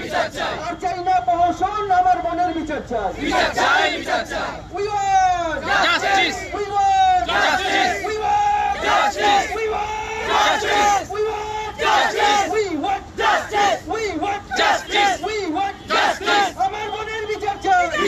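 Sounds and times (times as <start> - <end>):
crowd chanting: 0.0 - 0.6, 3.2 - 4.6, 5.6 - 6.4, 7.3 - 9.6, 10.2 - 11.1, 11.8 - 12.6, 13.2 - 13.8, 14.5 - 15.2, 15.9 - 16.6
man shouting into microphone: 4.7 - 7.3, 16.5 - 18.0.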